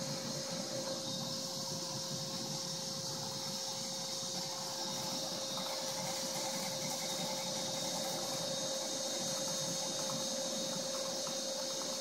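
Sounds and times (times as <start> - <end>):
shop vacuum blowing air: 0.0 - 12.0.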